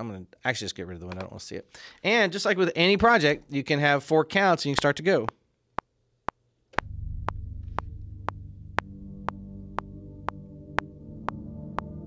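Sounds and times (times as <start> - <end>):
low synthesizer pad: 6.8 - 12.0.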